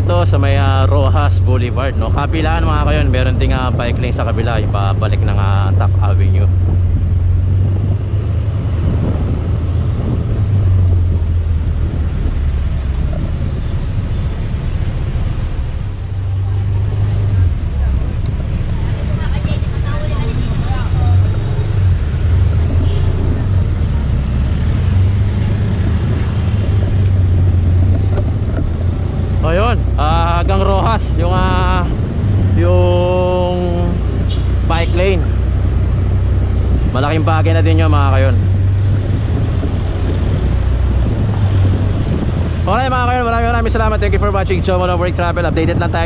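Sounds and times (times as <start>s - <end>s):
city road traffic: 0.0s - 46.0s
wind buffeting microphone: 0.0s - 46.0s.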